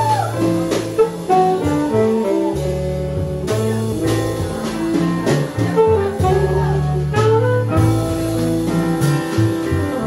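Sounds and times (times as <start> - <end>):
drums with cymbal strikes: 0.0 - 10.0
plucked upright bass: 0.0 - 10.0
saxophone: 0.0 - 10.0.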